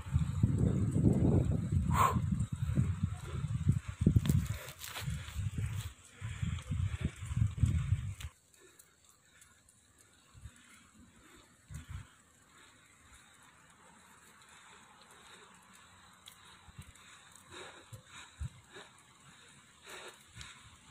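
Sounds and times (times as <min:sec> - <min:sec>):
wind rumbling on microphone: 0:00.0 - 0:09.4, 0:10.1 - 0:13.3, 0:15.1 - 0:20.9
cyclist breathing heavily: 0:00.0 - 0:20.9.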